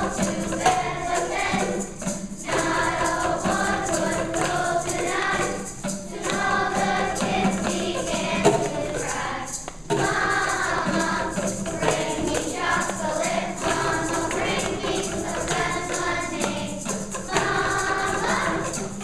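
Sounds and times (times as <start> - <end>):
children's choir singing: 0.0 - 19.0.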